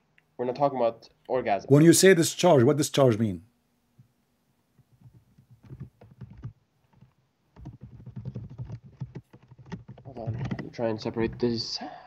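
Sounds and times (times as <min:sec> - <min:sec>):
typing on computer keyboard: 0:04.9 - 0:11.5.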